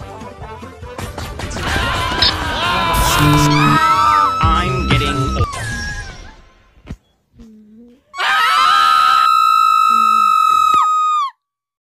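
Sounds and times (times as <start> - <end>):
loud high-pitched scream: 1.6 - 6.0, 8.2 - 11.4.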